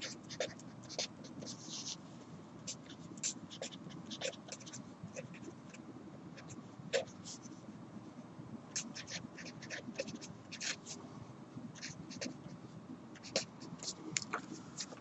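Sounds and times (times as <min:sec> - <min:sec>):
marker pen scratching on paper: 0:00.0 - 0:02.0, 0:02.6 - 0:05.8, 0:08.7 - 0:11.1, 0:11.8 - 0:12.6, 0:13.2 - 0:15.0.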